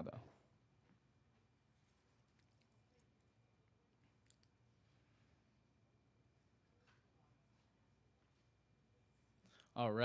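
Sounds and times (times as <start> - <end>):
faint clicks: 4.1 - 4.6.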